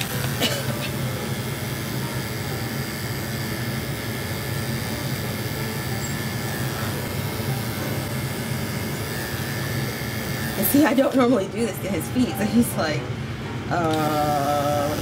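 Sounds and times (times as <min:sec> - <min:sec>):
electric clippers humming: 0:00.0 - 0:15.0.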